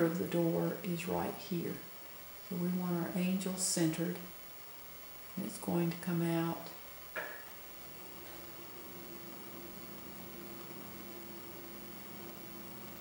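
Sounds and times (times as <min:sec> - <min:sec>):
faint low hum: 0:00.0 - 0:13.0
soft hiss: 0:00.0 - 0:13.0.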